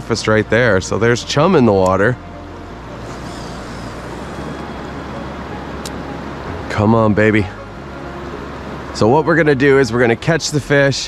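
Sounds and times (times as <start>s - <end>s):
river flowing: 0.0s - 11.0s.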